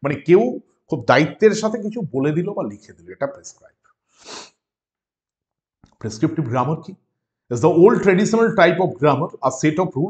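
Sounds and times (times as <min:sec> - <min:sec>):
man's sharp nasal exhale: 0:04.1 - 0:04.6.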